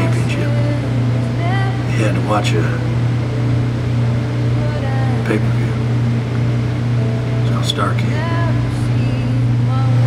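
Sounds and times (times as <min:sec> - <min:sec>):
man's voice: 0:00.0 - 0:00.9, 0:01.6 - 0:02.9, 0:04.8 - 0:05.9, 0:07.4 - 0:08.7
steady low hum: 0:00.0 - 0:10.0.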